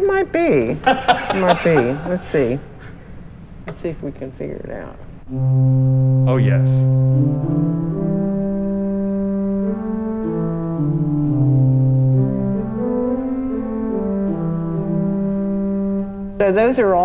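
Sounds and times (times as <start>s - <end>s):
pipe organ sustained notes: 5.3s - 16.3s.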